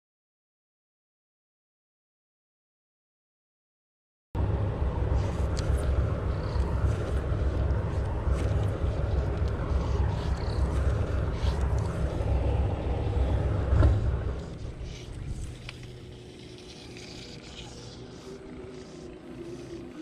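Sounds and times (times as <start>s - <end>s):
engine running low rumble: 4.4s - 20.0s.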